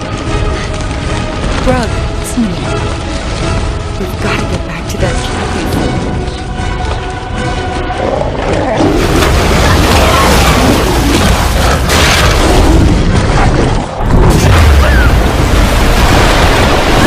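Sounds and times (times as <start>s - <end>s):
deep rumbling booms: 8.7s - 17.0s.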